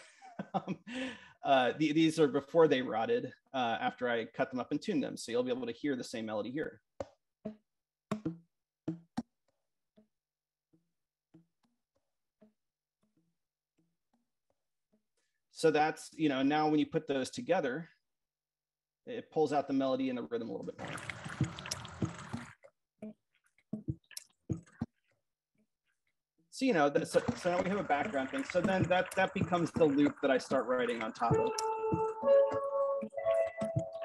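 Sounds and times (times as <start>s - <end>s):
water drops falling on microphone: 20.7s - 23.2s, 27.1s - 32.7s
pitched knocks on kelp tubes: 28.5s - 30.6s
tuned kelp tube notes: 28.6s - 34.0s.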